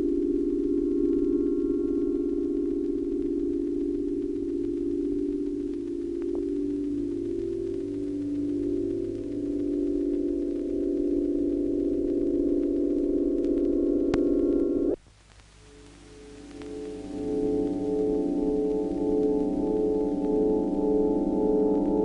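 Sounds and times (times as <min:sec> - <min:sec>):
electronic drone of beating tones: 0:00.0 - 0:15.0, 0:16.2 - 0:22.0
higher electronic tone: 0:00.0 - 0:15.0, 0:16.1 - 0:22.0.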